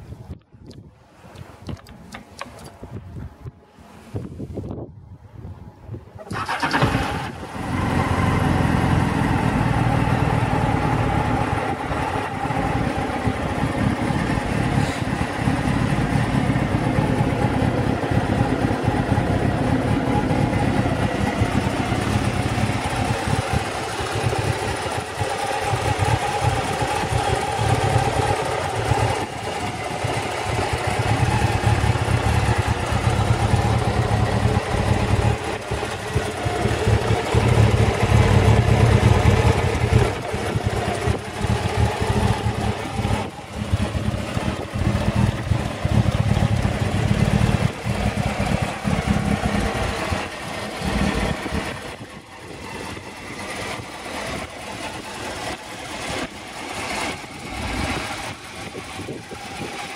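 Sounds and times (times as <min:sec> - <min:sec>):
motorcycle engine idling: 0:07.4 - 0:59.9.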